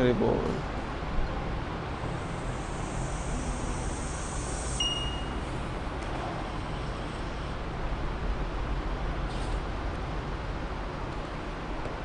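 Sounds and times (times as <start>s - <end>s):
low hum: 0.0s - 10.9s.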